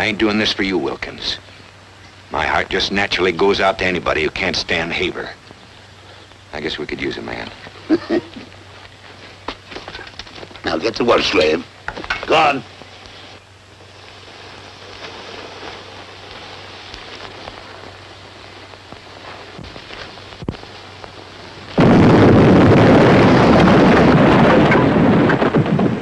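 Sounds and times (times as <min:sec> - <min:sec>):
fuse sizzling: 0:00.0 - 0:25.6
blasting charge explosion: 0:21.8 - 0:26.0.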